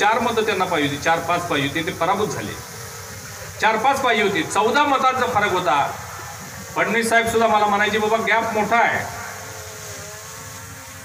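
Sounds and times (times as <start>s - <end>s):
low engine-like hum: 7.4s - 11.0s.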